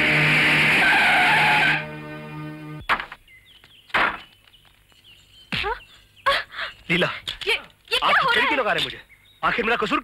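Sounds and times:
tyres screeching: 0.0s - 2.0s
background music: 0.0s - 2.8s.

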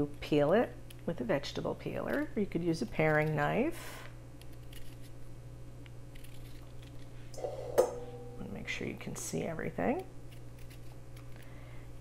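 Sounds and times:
peeler scraping ginger skin: 10.3s - 11.3s.

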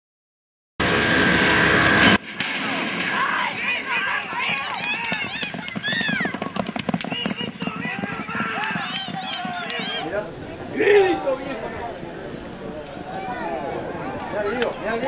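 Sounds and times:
spectators shouting excitedly: 3.1s - 6.4s
horses galloping on dirt: 3.2s - 11.6s
sharp clicks: 4.1s - 9.8s.

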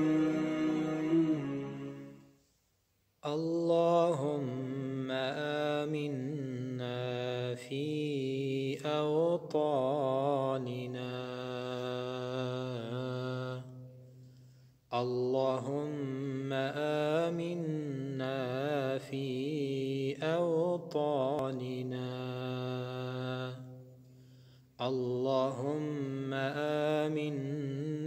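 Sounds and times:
man chanting melodically: 24.8s - 28.0s.

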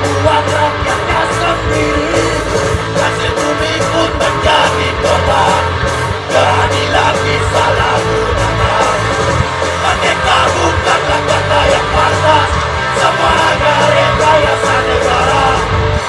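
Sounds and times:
person singing: 0.0s - 15.8s
bass guitar: 0.0s - 16.0s
drums: 0.0s - 16.0s
electric guitars: 0.0s - 16.0s.

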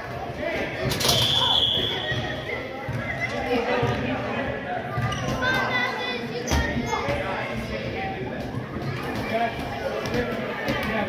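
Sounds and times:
whistle blown: 1.1s - 2.6s.

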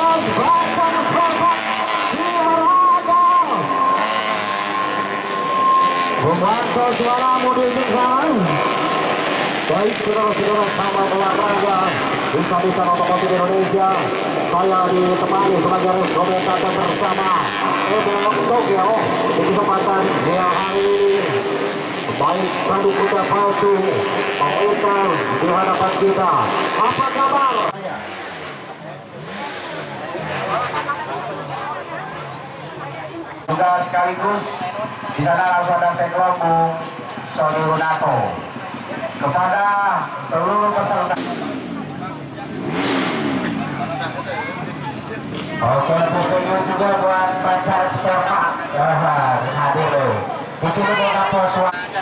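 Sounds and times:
dirt bike engine high revs: 0.0s - 52.0s.

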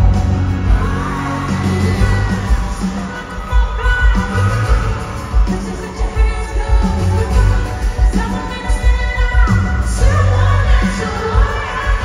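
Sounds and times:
heavy drum-and-bass beat: 0.0s - 12.0s
man singing: 0.0s - 12.0s
pop-rock music through sound system: 0.0s - 12.0s.

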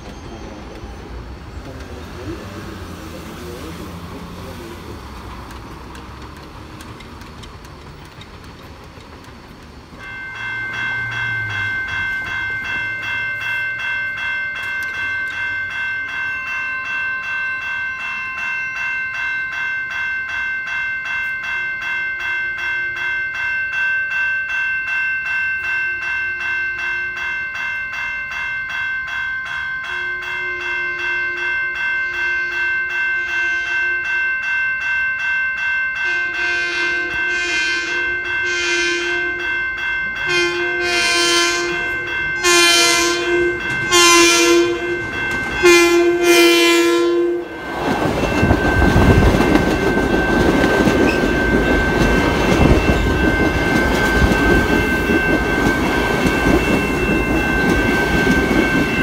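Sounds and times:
crossing bell ringing: 0.0s - 8.4s, 9.7s - 59.0s
train horn blasts: 29.9s - 31.5s, 32.1s - 34.2s, 36.0s - 39.6s, 40.2s - 47.5s.

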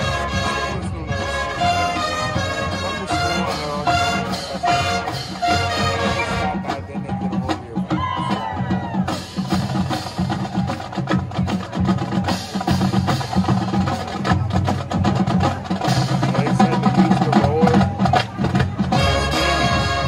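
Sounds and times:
marching band playing chords: 0.0s - 20.0s
rhythmic drumming: 0.0s - 20.0s.

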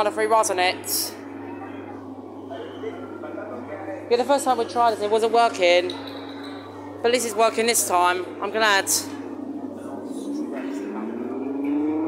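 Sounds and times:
car engine sound effect revving: 10.1s - 12.0s.

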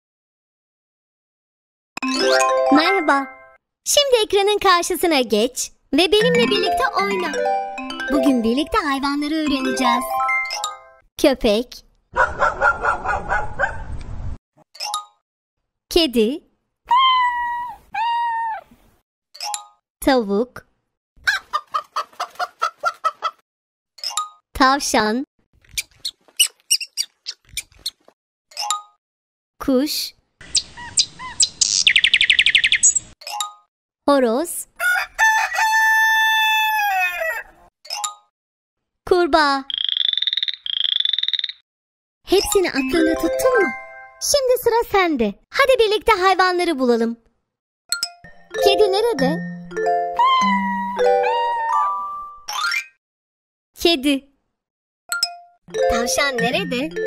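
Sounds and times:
dog barking: 12.2s - 13.9s
rabbit high-pitched squeaks: 16.9s - 18.6s, 25.6s - 28.7s, 30.5s - 31.9s, 50.2s - 52.5s
frog trilled croaks: 39.6s - 41.6s.

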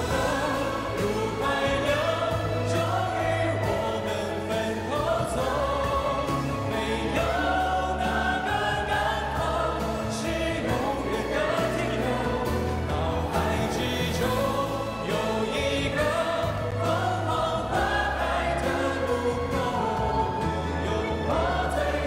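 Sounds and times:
choir singing pop ballad: 0.0s - 22.0s
male lead vocal: 0.0s - 22.0s.

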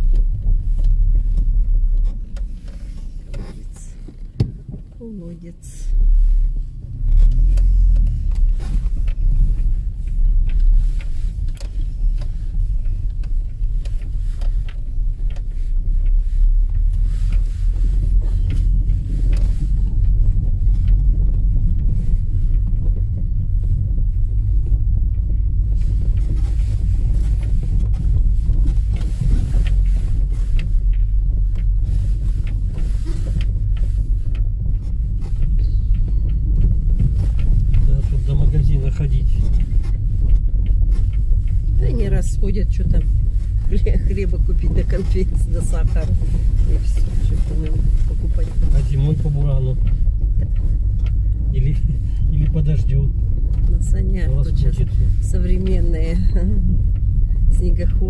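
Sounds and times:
car rumbling on dirt road: 0.0s - 58.0s.

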